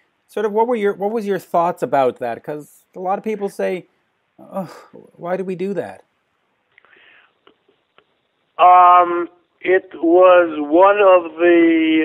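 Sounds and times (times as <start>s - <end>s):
faint breath: 6.8s - 7.5s.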